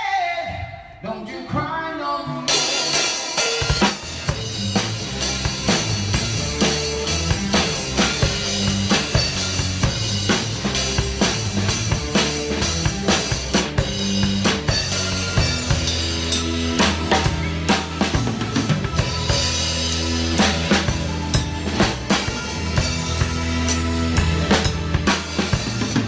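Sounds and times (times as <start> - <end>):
backing song: 0.0 - 26.0
drum kit playing a steady beat: 2.5 - 26.0.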